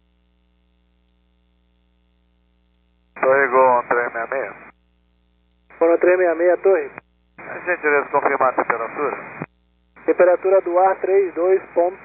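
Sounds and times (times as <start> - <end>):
voice over radio: 3.2 - 4.7, 5.7 - 9.4, 10.0 - 12.0.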